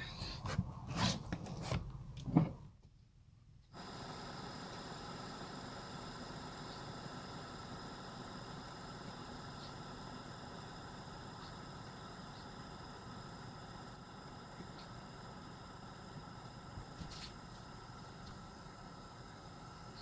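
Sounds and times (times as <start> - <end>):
thin high whine: 3.7 - 20.0
well pump humming: 3.7 - 20.0.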